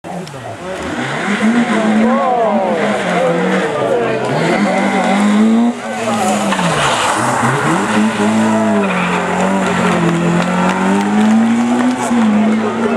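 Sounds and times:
rally car engines revving: 0:00.0 - 0:12.9.

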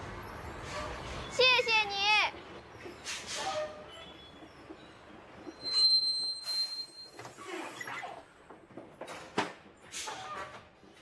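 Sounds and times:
bus brakes squealing: 0:00.2 - 0:01.4, 0:02.9 - 0:08.0.

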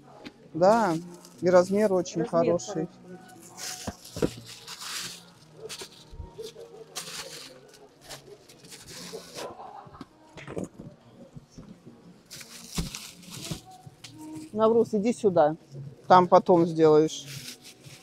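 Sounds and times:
bags rustling and handling noise: 0:00.6 - 0:15.2, 0:16.6 - 0:18.0.

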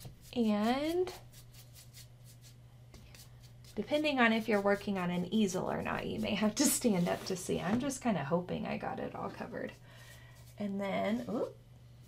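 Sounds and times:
paintbrush scratching on canvas: 0:00.0 - 0:07.5, 0:09.2 - 0:11.6
low electrical hum: 0:00.0 - 0:12.0.

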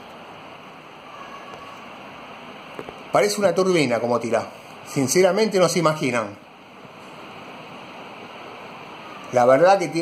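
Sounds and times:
ceiling fan rushing air: 0:00.0 - 0:10.0.

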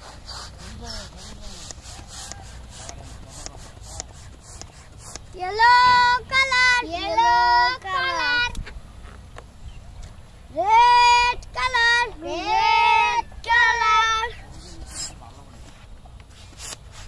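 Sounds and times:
child singing wordless tune: 0:05.3 - 0:08.6, 0:10.5 - 0:14.4.

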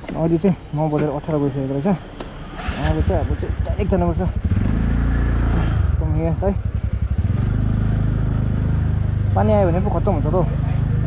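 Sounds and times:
scooter engine pulling away: 0:02.4 - 0:11.0.

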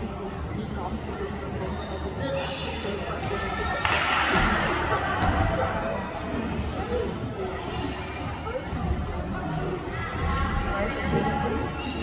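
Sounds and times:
indistinct voices echoing in hall: 0:00.0 - 0:12.0.

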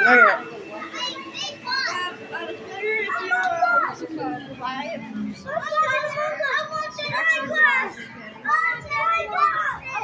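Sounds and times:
child talking: 0:00.7 - 0:04.3, 0:05.4 - 0:10.0.

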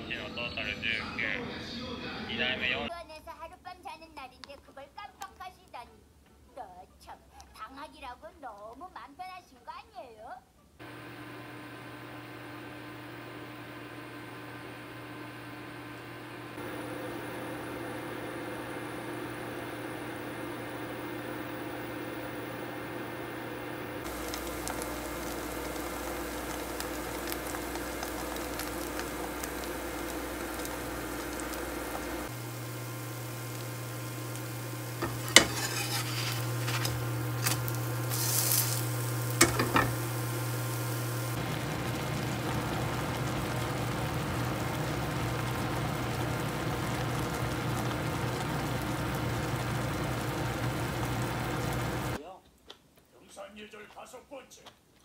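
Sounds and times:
pancake sizzling in oil: 0:10.8 - 0:52.2
metal turner scraping a pan: 0:35.0 - 0:40.0.

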